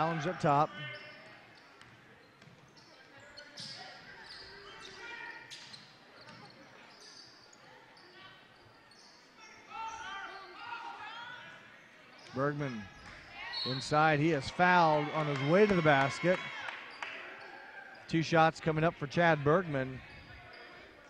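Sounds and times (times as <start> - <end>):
sneakers squeaking: 0.0 - 14.2, 20.0 - 21.0.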